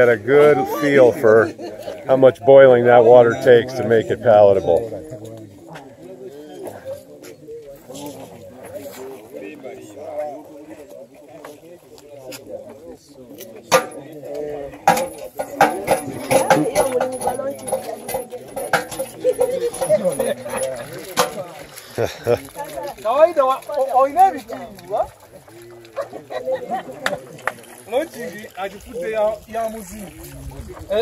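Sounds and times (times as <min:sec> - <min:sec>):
people talking and calling out: 0:00.0 - 0:31.0.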